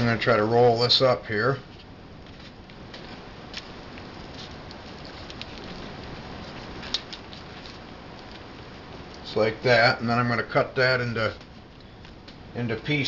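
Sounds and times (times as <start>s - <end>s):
background hiss: 0.0s - 13.0s
hands rolling food on paper plate: 1.6s - 9.4s.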